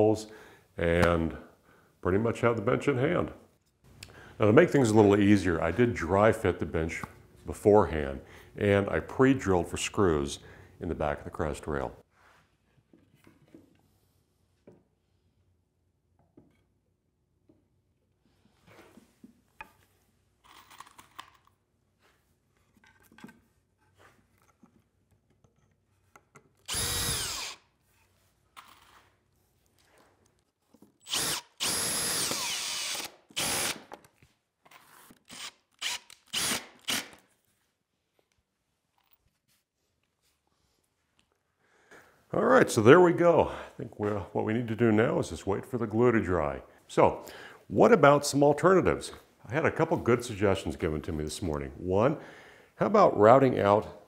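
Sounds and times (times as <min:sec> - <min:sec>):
cordless drill driving screws: 0:26.6 - 0:27.7, 0:31.0 - 0:33.9, 0:35.3 - 0:37.2.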